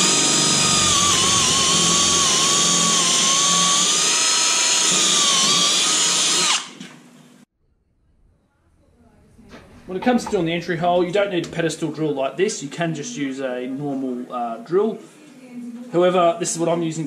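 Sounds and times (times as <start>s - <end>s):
power drill boring through wood: 0.0s - 6.9s.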